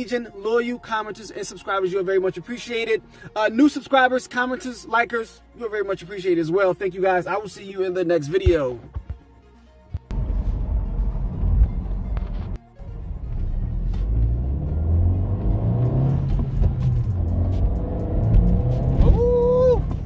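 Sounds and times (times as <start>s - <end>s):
car engine accelerating hard: 13.1s - 20.0s.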